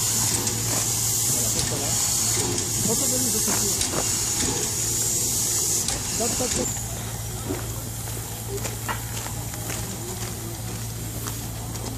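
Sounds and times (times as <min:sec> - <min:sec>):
steady low hum: 0:00.0 - 0:11.9
steam locomotive hissing: 0:00.0 - 0:11.9.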